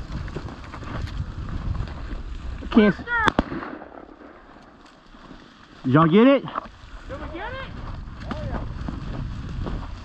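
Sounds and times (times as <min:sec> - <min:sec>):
shotgun shots: 0:03.2 - 0:04.8.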